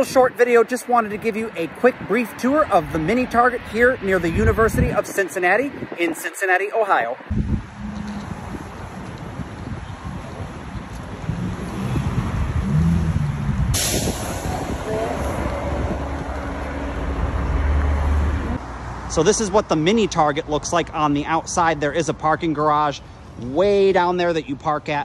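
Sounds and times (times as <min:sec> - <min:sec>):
traffic engine rumble: 0:00.0 - 0:25.0
sudden hiss: 0:13.7 - 0:15.5.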